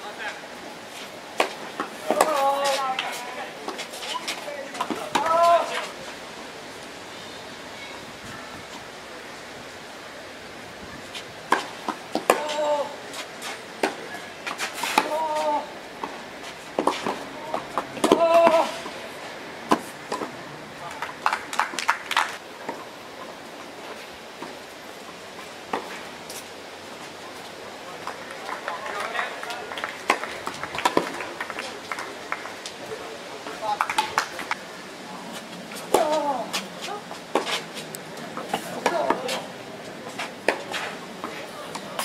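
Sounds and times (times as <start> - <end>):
tennis ball bouncing: 1.4 - 3.2, 11.5 - 12.6, 16.8 - 18.9, 30.0 - 31.2, 38.4 - 39.4
racquets hitting tennis ball: 1.4 - 6.0, 11.2 - 19.0, 19.7 - 22.8, 28.0 - 32.7, 35.4 - 42.0
people's voices: 1.7 - 6.8, 12.2 - 16.2, 16.9 - 21.6, 27.2 - 42.0.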